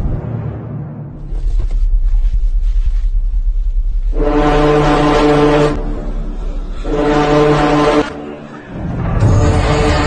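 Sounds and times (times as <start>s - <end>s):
low rumble: 0.0s - 4.8s
deep horn blasts: 4.0s - 10.0s.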